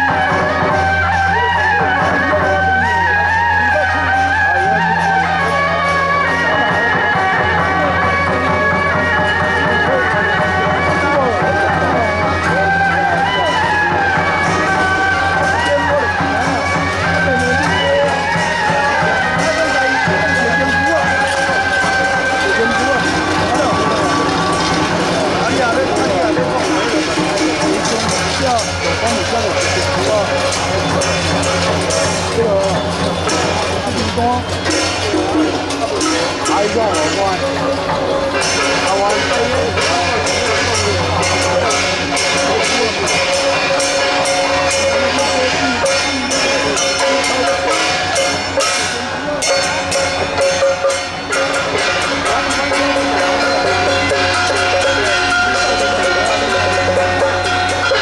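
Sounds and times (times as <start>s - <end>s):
people's voices: 0.0s - 58.0s
percussion strikes: 0.0s - 58.0s
procession music with wind instruments: 0.0s - 58.0s.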